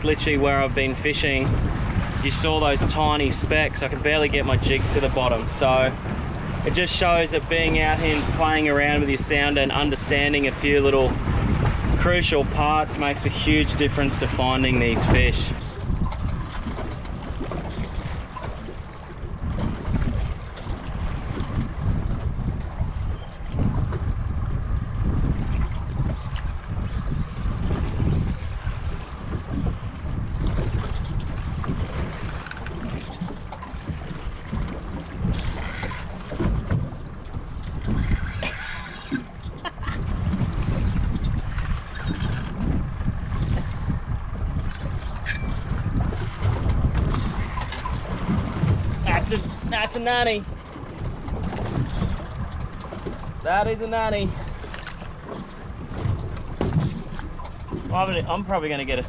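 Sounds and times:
water against boat hull: 0.0s - 59.0s
wind buffeting microphone: 0.0s - 59.0s.

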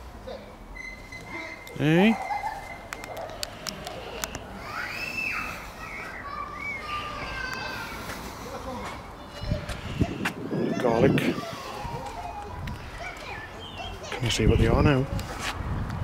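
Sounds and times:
bird calling and chirping: 0.8s - 6.9s, 12.1s - 14.8s
man's voice: 14.2s - 15.2s.

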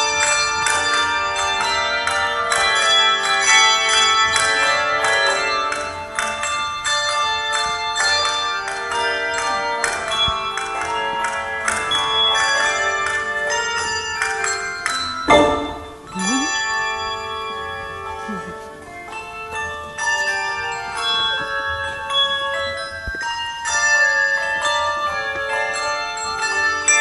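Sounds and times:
handbell choir ringing chords: 0.0s - 27.0s
sharp loud hit: 15.3s - 16.2s.

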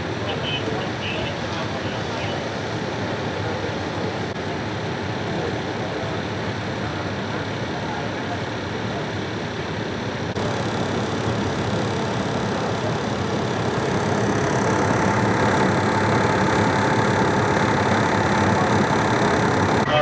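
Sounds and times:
faint steady whine: 0.0s - 20.0s
fire engine idling: 0.0s - 20.0s.

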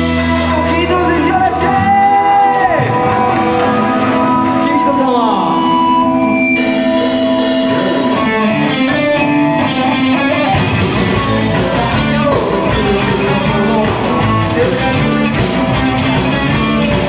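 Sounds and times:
guitar notes sliding down: 0.0s - 17.0s
live rock band playing: 0.0s - 17.0s.

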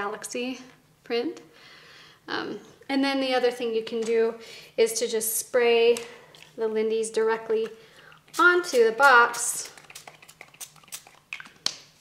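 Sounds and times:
pump spray bottle spritzes: 8.3s - 11.8s.

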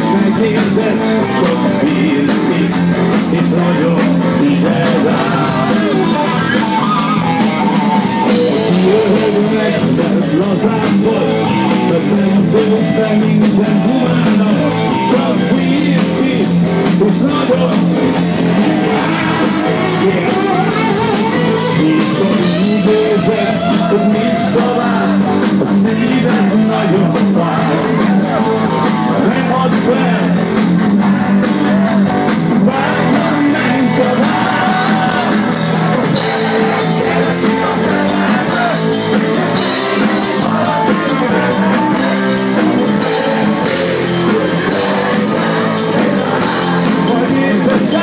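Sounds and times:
drums: 0.0s - 48.0s
electric guitar melody: 0.0s - 48.0s
person singing: 0.0s - 48.0s
rock band playing live: 0.0s - 48.0s.

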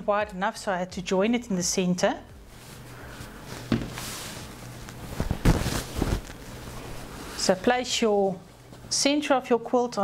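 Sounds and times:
fabric sheet rustling: 2.4s - 7.8s
soft bumps: 3.5s - 6.4s.

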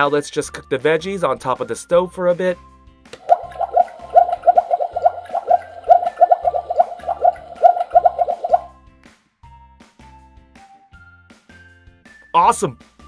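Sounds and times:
background music: 0.0s - 13.0s
bubbling bloops: 3.2s - 8.7s.

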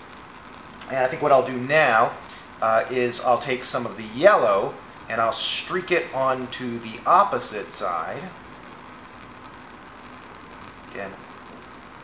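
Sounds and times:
gas flame hissing: 0.0s - 12.0s.

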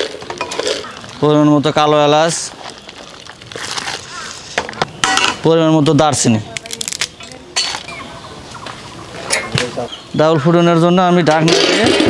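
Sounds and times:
faint bird calls: 2.6s - 5.1s.

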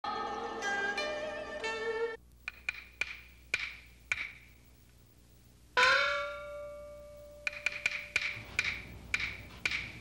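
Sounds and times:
wood block clacking: 2.4s - 4.5s, 7.4s - 10.0s.

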